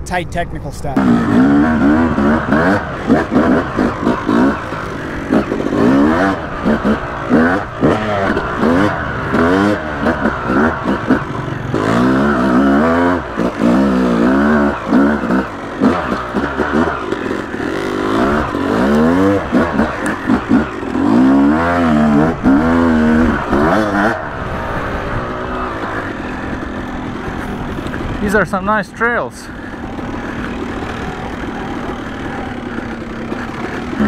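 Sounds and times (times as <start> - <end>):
dirt bike engine revving: 0.8 - 34.0.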